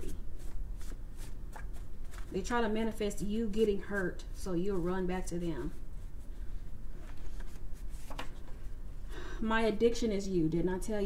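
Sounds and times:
cards being shuffled: 0.0 - 2.4, 7.0 - 8.6.

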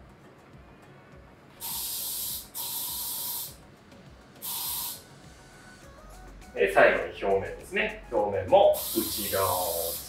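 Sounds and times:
aerosol spray hiss: 1.6 - 3.6, 4.4 - 5.1, 8.7 - 10.0.

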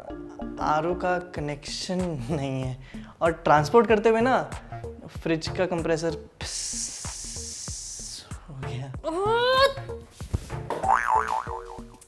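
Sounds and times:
light background music: 0.0 - 12.0
comic boing sound effect: 10.8 - 11.9.

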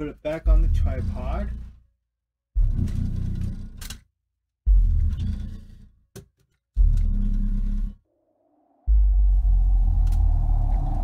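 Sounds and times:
subwoofer playing deep bass music: 0.5 - 1.5, 2.6 - 3.7, 4.7 - 5.6, 6.8 - 7.8, 8.9 - 11.0.

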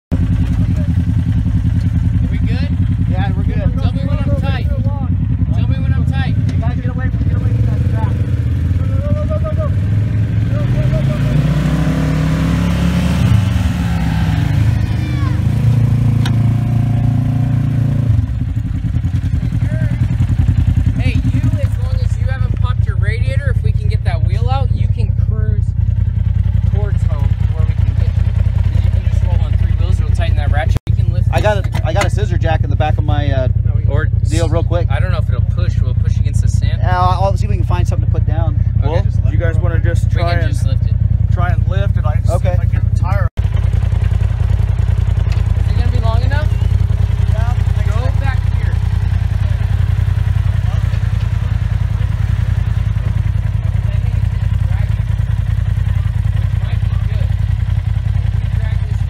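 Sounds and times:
utv engine revving: 0.1 - 59.0
voices talking: 0.2 - 59.0.

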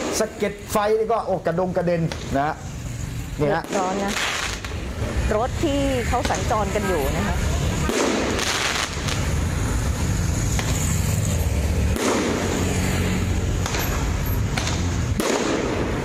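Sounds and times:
fireworks bangs and cracks: 0.0 - 1.0, 3.4 - 16.0.

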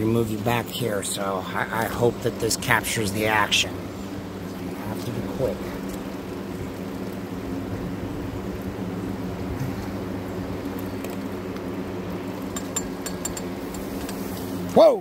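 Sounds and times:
electric box fan humming: 0.0 - 15.0
light clicks of glass tubing: 12.5 - 14.2.

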